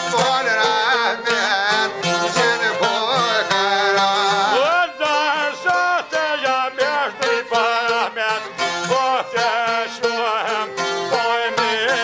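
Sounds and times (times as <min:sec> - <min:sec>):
man singing folk song: 0:00.0 - 0:12.0
plucked long-necked lute: 0:00.0 - 0:12.0.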